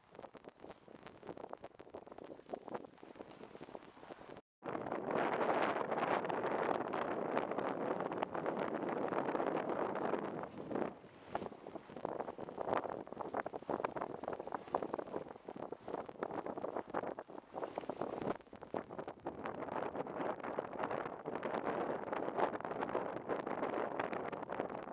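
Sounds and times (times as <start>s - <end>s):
wind buffeting microphone: 0.0s - 24.9s.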